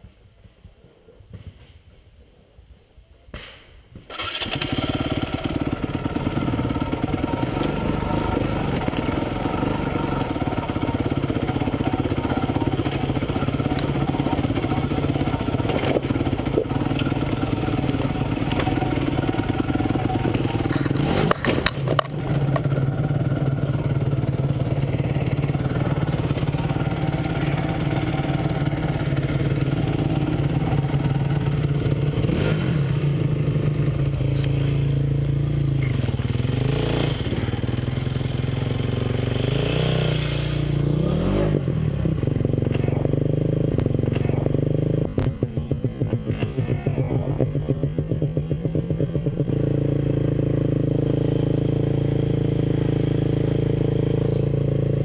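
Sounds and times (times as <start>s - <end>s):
dirt bike engine running: 4.2s - 55.0s.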